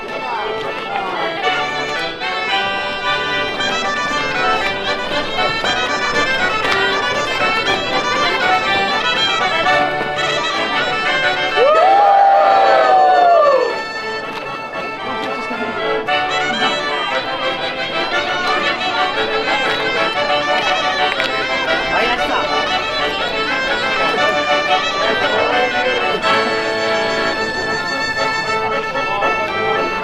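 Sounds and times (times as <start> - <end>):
accordion dance tune: 0.0 - 30.0.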